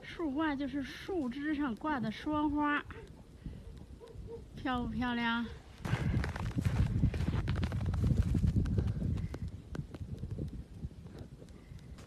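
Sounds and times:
wind buffeting microphone: 0.0 - 12.0
footsteps crunching through snow: 5.7 - 9.3.

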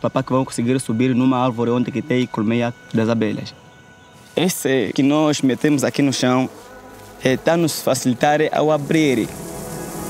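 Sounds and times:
man speaking: 0.0 - 3.6, 4.3 - 6.6, 7.2 - 9.4.

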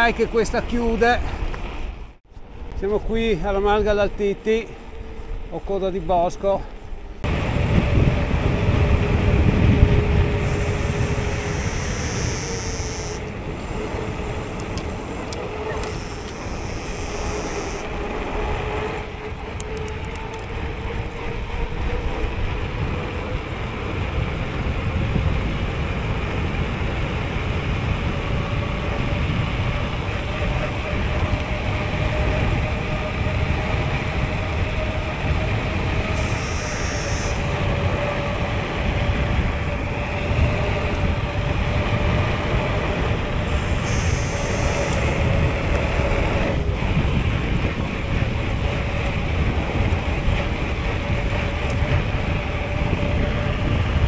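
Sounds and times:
tyres humming on road: 0.0 - 54.0
wind rushing over microphone: 0.0 - 54.0.

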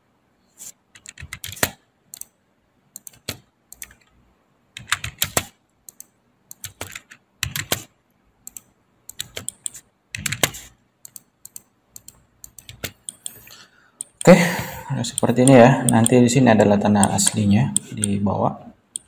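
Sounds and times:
computer keyboard typing: 0.9 - 4.1, 4.8 - 18.2.

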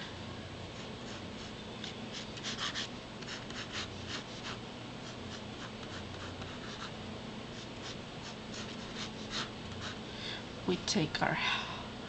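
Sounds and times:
steady low hum: 0.0 - 12.0
pencil scratching on paper: 0.8 - 6.9, 7.5 - 10.0.

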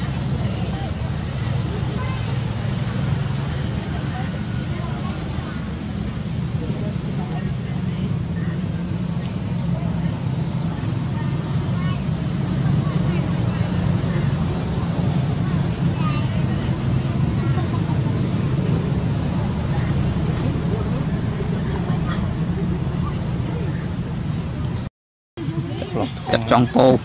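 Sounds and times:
faint distant voices: 0.0 - 27.0
low outdoor rumble: 0.0 - 27.0.

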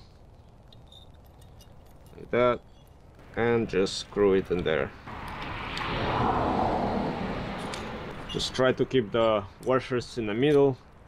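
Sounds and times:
vehicle passing by: 3.2 - 9.2.

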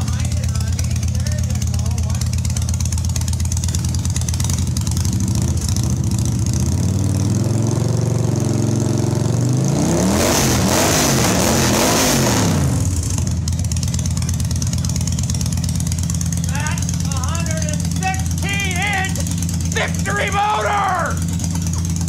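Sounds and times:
motorcycle engine idling and revving: 0.0 - 22.0.

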